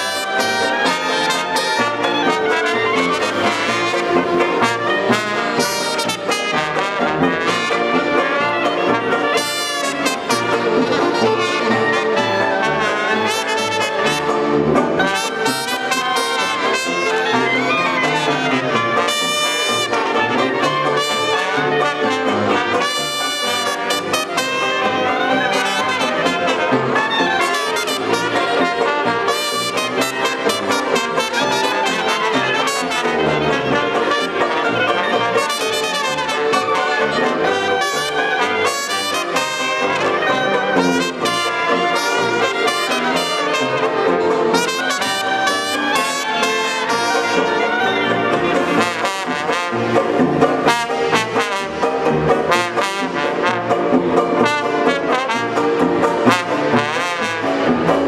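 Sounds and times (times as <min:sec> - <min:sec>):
jazz band playing: 0:00.0 - 0:58.0.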